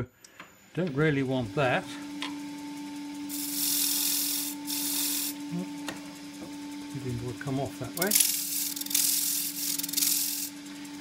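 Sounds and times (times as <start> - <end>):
lathe motor hum: 0.8 - 11.0
gouge cutting wood hiss: 3.3 - 5.4.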